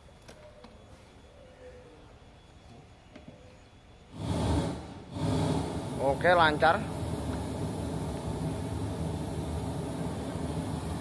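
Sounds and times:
vehicle engine rushing: 4.1s - 11.0s.

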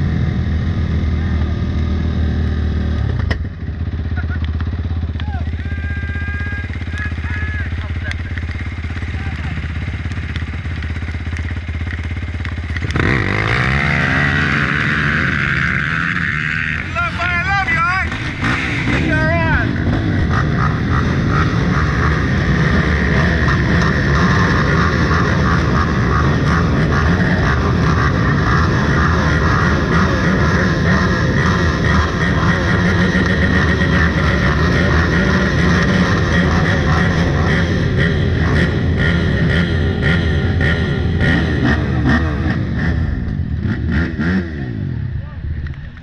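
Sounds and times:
engines idling and blipping: 0.0s - 46.0s.

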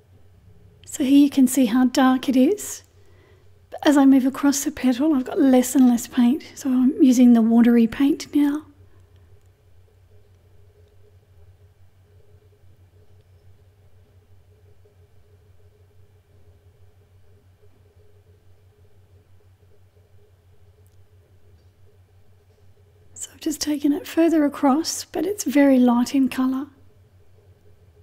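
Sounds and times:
faint steady tone: 0.0s - 28.0s
low hum: 0.0s - 28.0s.

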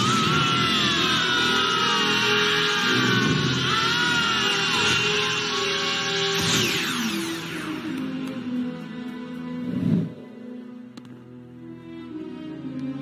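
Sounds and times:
dramatic soundtrack music: 0.0s - 13.0s.

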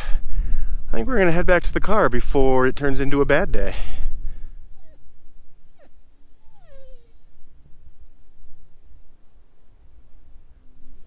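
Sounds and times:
dog whining: 4.7s - 7.5s.

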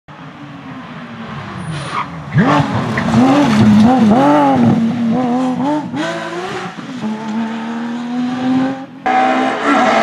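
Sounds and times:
rally car engine approaching: 0.1s - 10.0s.

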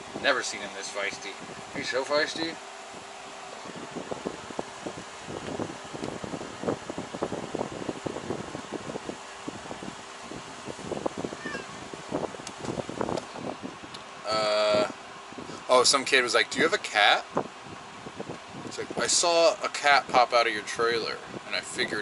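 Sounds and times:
small cat sounds: 11.4s - 11.8s.

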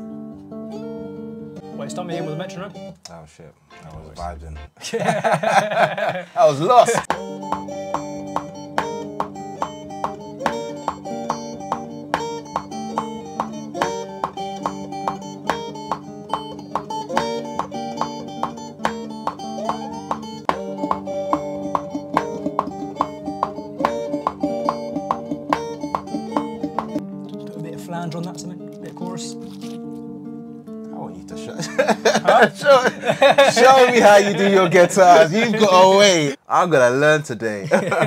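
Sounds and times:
electric guitar picked melody: 0.0s - 3.0s, 7.1s - 35.9s.

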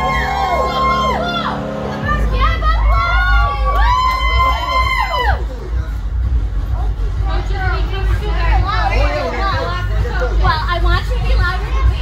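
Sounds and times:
children cheering and shouting: 0.0s - 5.7s
music with heavy bass: 0.0s - 12.0s.

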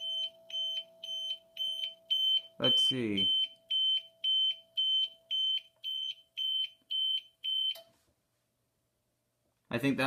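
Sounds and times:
high alarm beeps: 0.0s - 7.8s.

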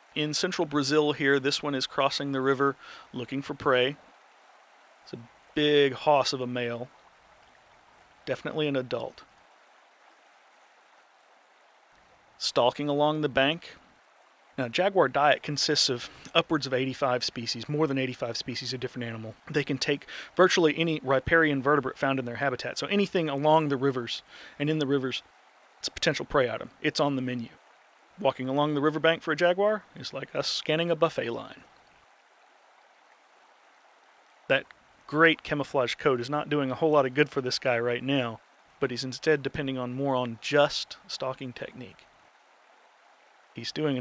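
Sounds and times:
faint background hiss: 0.0s - 44.0s.

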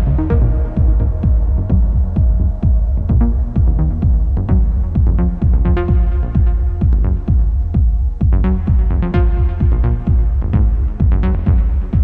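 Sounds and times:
low sustained bass tone: 0.0s - 7.8s
techno kick drum: 0.0s - 12.0s.

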